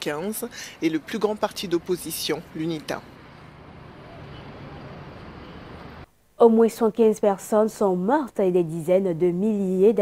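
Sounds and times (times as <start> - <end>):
street traffic noise: 0.0 - 8.0.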